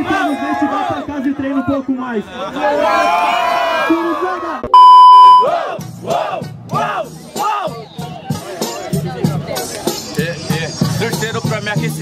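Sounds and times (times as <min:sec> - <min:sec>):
loud electronic bleep: 0:04.7 - 0:05.5.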